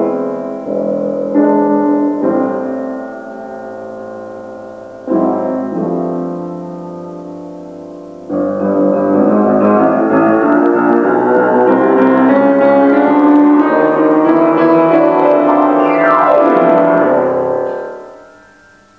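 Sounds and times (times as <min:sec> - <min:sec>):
piano music: 0:00.0 - 0:18.9.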